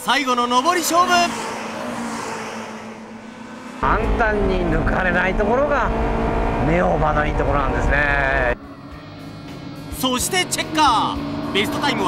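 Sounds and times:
race car engine passing: 0.0 - 12.0.

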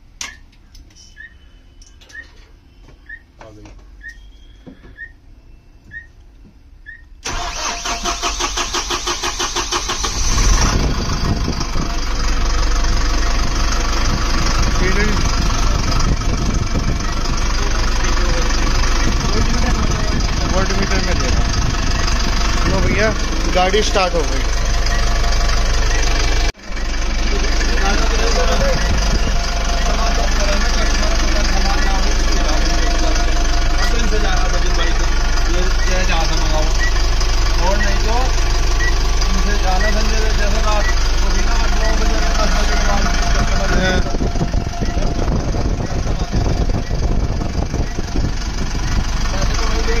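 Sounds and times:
bus diesel engine idling: 7.2 - 50.0.

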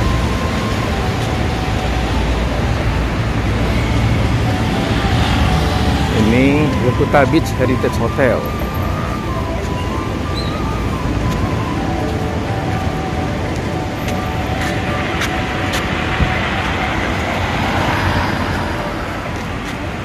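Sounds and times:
cars driving past: 0.0 - 20.0
road noise: 0.0 - 20.0.

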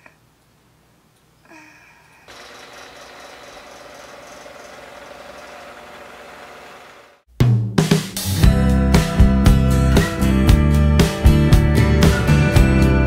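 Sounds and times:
steady mechanical buzz: 2.3 - 7.3.

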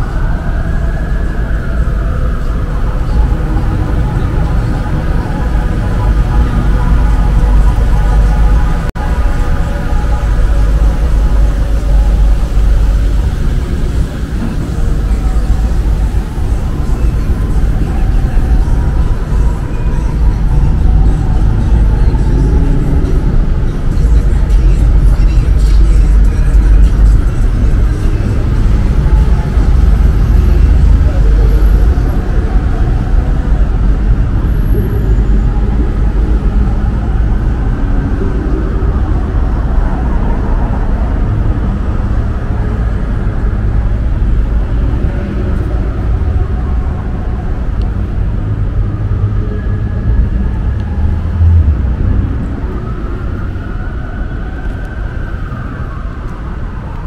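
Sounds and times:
road traffic rumble: 0.0 - 57.0.

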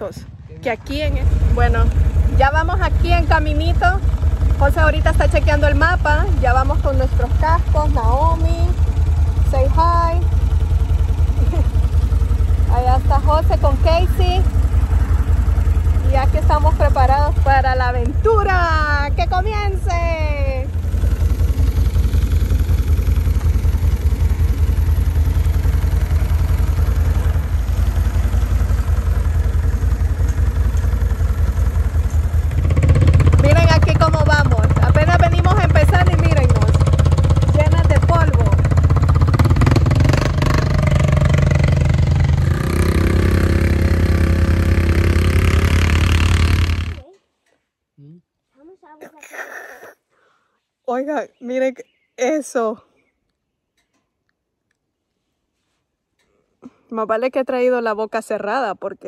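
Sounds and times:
atv engine running: 0.0 - 47.1.

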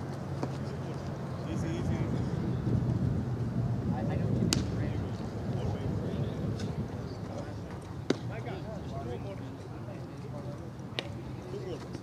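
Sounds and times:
faint distant voices: 0.1 - 12.0
wind on microphone: 1.5 - 9.1.

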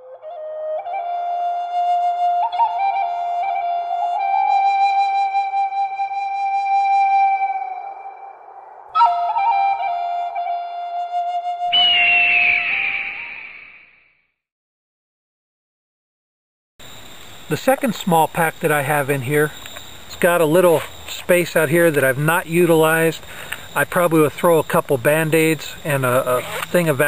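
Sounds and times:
solo flute melody: 0.0 - 13.5.

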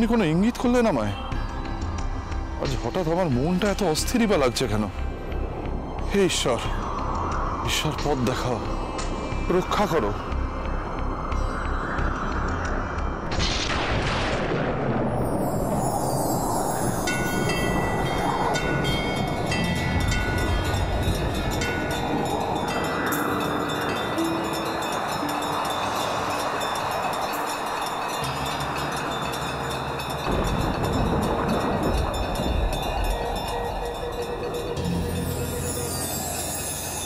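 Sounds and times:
shimmering chimes: 15.0 - 37.0.

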